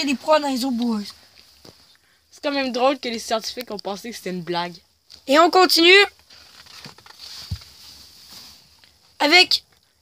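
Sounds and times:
book pages turning: 0:06.2 - 0:08.0.

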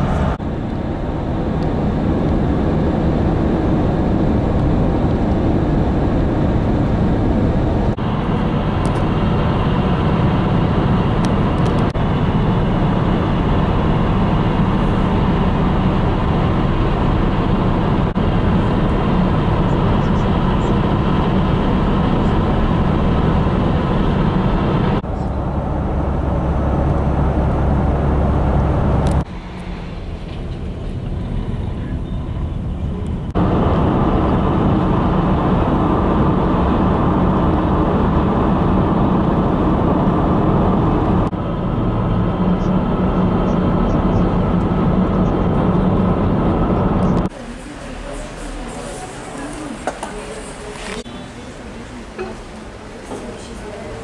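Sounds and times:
road and engine noise in van: 0:00.0 - 0:54.0.

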